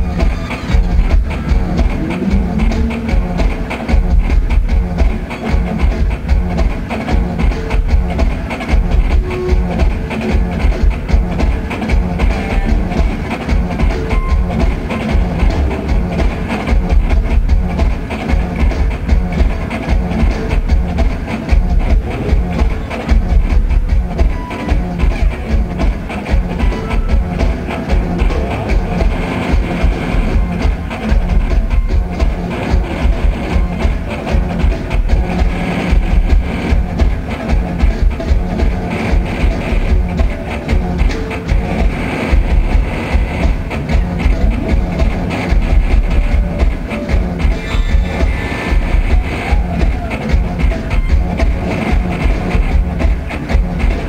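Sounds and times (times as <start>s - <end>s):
drum kit driving beat: 0.0s - 54.0s
electric guitars: 0.0s - 54.0s.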